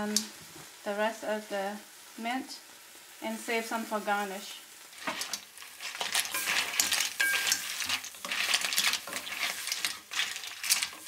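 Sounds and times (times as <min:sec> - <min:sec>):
light sizzle: 0:00.0 - 0:11.0
clams clicking against pan: 0:05.0 - 0:11.0
spatula scraping a pan: 0:05.0 - 0:11.0.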